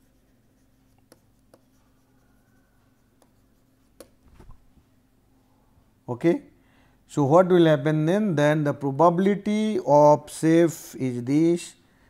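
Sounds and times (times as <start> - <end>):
low steady hum: 0.0 - 12.0
stylus tapping on pen tablet: 1.0 - 1.8, 3.2 - 4.2.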